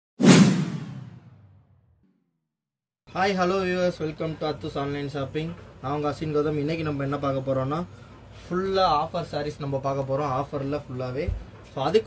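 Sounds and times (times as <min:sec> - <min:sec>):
whoosh sound effect: 0:00.2 - 0:01.6.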